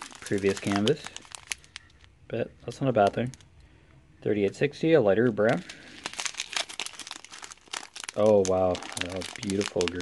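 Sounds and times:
plastic bags crinkling: 0:00.0 - 0:03.5, 0:05.2 - 0:10.0.

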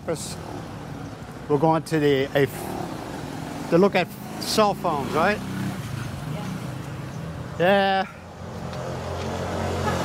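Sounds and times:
motor scooter passing by: 0:02.6 - 0:07.4, 0:08.6 - 0:10.0.

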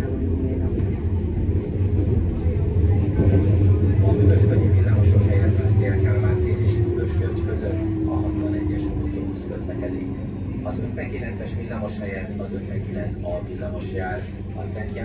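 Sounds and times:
falling whine of tram slowing: 0:00.0 - 0:15.0
tram interior low rumble: 0:00.0 - 0:15.0.

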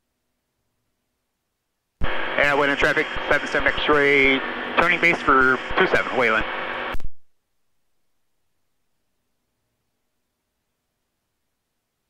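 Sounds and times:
pilot voice over radio intercom: 0:02.4 - 0:06.5.

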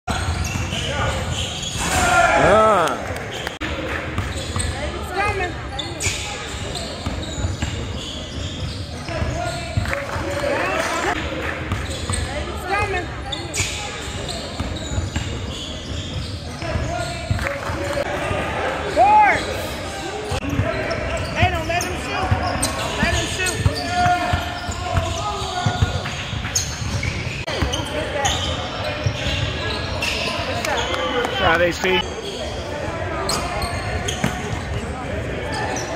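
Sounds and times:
sneakers squeaking: 0:00.1 - 0:35.9
players calling out: 0:00.2 - 0:03.2.

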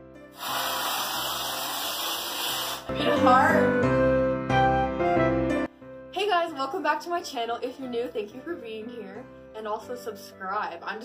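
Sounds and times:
background music: 0:00.0 - 0:11.0
aerosol can spraying hiss: 0:00.3 - 0:03.0.

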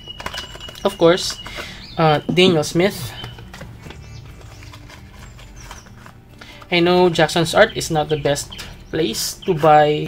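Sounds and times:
paint boxes tapping and rustling: 0:00.0 - 0:10.0.

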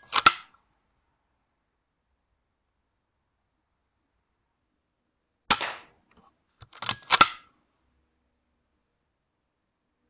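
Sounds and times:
air rifle firing: 0:00.0 - 0:00.5, 0:05.5 - 0:06.0, 0:06.8 - 0:07.5
mechanical clicks and clatter: 0:00.0 - 0:00.6, 0:06.6 - 0:07.5.

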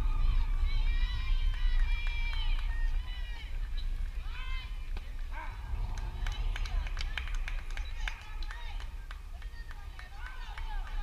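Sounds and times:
wind rumbling on microphone: 0:00.0 - 0:11.0
sharp claps or clicks: 0:05.8 - 0:11.0.

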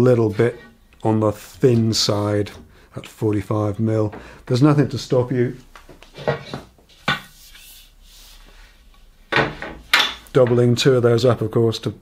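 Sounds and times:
metal rubbing and sliding: 0:06.1 - 0:08.9.

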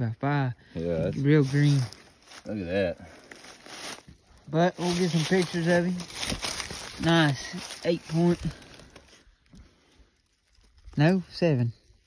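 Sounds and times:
rustling on dry leaves: 0:00.9 - 0:12.0.

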